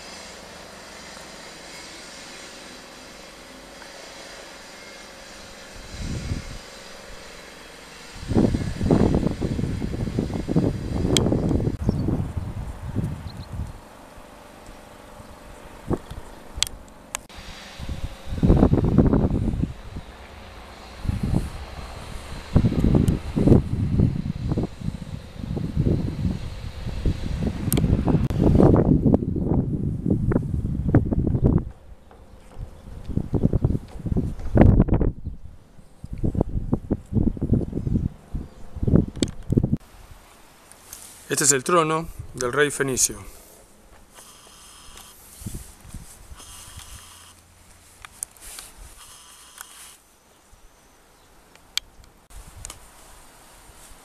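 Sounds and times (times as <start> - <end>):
wind buffeting microphone: 5.6 - 7.4, 8.0 - 13.9, 15.3 - 40.2, 42.0 - 42.4, 45.3 - 47.1
sharp clicks: 49.0 - 50.0.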